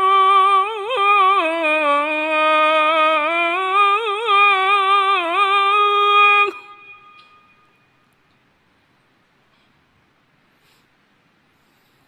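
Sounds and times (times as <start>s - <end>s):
amplified man's call to prayer: 0.0s - 7.1s.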